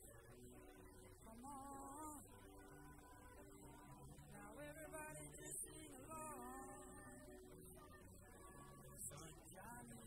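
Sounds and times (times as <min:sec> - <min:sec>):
choir singing faintly: 0:00.0 - 0:10.0.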